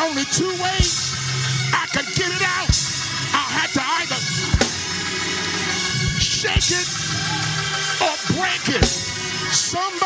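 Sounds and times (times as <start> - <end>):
church organ chords: 0.0 - 10.0
drum kit: 0.0 - 10.0
bass drum hit: 4.5 - 5.1, 6.0 - 7.1.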